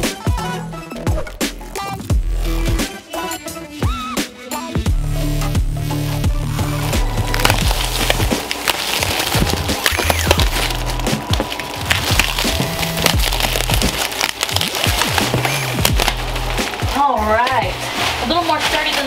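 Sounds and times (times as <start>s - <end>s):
background music with bass line: 0.0s - 8.6s, 9.2s - 18.0s
plastic stretch wrap crackling: 6.4s - 19.0s
woman's voice: 16.9s - 19.0s.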